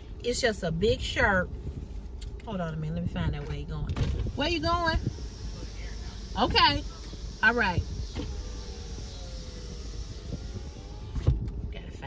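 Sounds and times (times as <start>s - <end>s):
vehicle rumble inside car: 0.0s - 12.0s.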